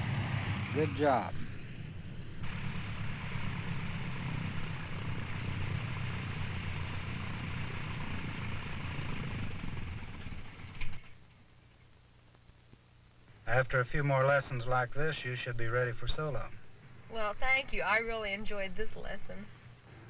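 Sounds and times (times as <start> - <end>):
propeller aeroplane engine running: 0.0 - 11.4.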